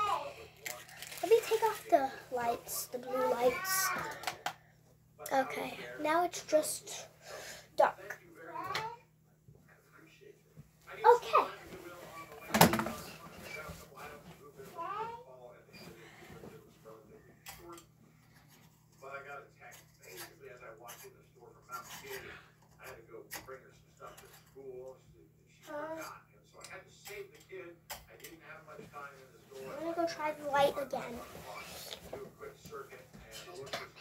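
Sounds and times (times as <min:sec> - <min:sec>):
ceiling fan humming: 0:00.0 - 0:24.0.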